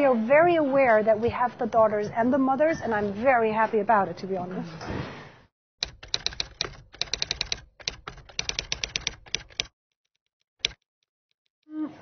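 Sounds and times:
typewriter keystroke clacks: 5.8s - 9.7s, 10.6s - 10.8s.

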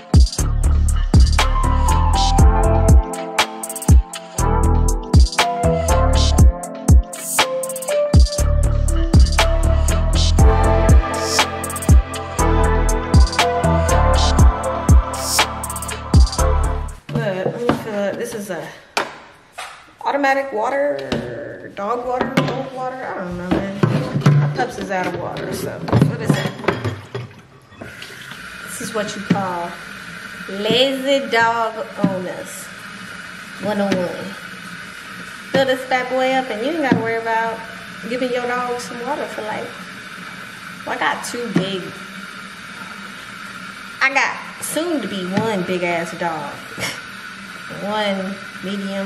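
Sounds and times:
water running from faucet: 0.0s - 7.2s, 8.1s - 17.0s, 24.2s - 49.0s.

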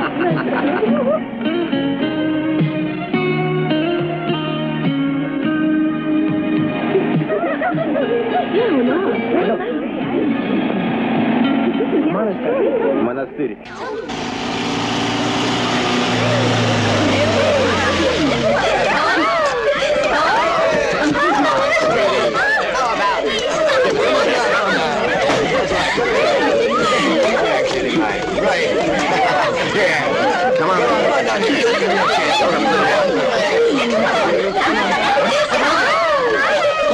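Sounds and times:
voices talking: 6.2s - 36.9s
women chattering: 6.6s - 36.9s
road noise: 13.6s - 23.9s
truck engine drone: 13.7s - 19.6s.

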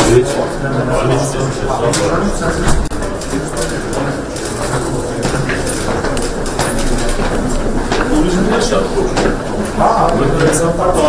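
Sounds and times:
footsteps and shuffling: 2.9s - 11.0s.

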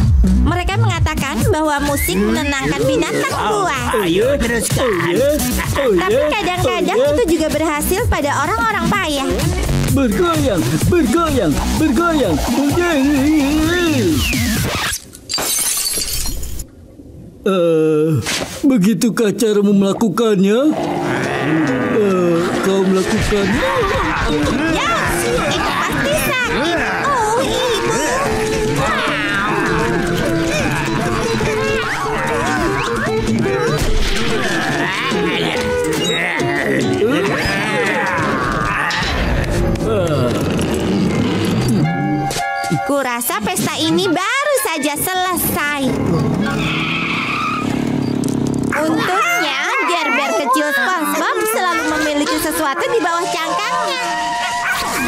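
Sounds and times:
party music with descending slide: 0.0s - 15.0s, 23.3s - 42.6s
cartoon man wailing cry: 21.1s - 40.5s, 48.8s - 54.4s.

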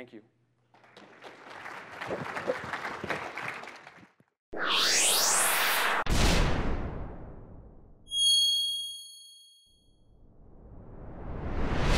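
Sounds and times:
bright bell-like chime: 8.1s - 9.9s.

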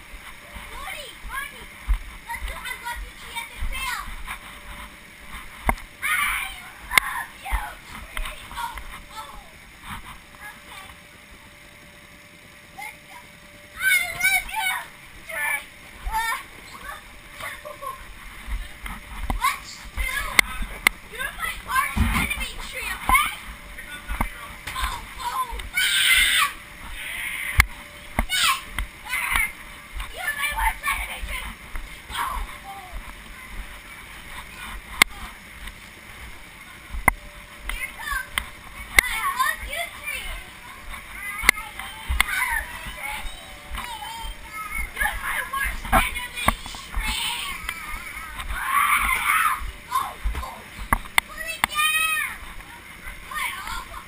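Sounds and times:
child shouting: 6.0s - 7.7s, 13.8s - 18.0s, 24.8s - 26.6s, 28.3s - 29.5s, 30.2s - 31.5s, 39.0s - 40.4s, 41.2s - 46.4s, 47.0s - 50.6s, 51.3s - 52.4s, 53.3s - 54.0s
camera knocking inflatable wall: 21.9s - 22.3s
children calling out: 24.7s - 27.6s, 28.2s - 31.5s, 39.0s - 50.7s, 51.3s - 54.0s.

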